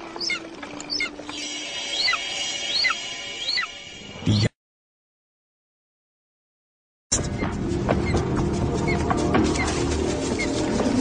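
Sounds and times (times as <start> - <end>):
steady high held tones: 1.3 - 4.2.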